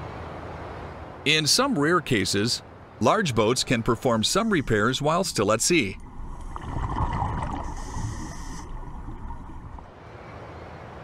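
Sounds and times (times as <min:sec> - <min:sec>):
underwater bubbling and gurgling: 0:04.4 - 0:09.9
underwater low rumble: 0:05.9 - 0:09.9.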